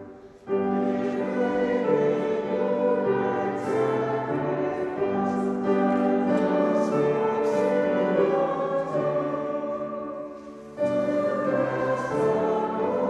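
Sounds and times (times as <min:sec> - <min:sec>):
sustained organ: 0:00.0 - 0:13.0
voices singing a hymn: 0:00.0 - 0:13.0.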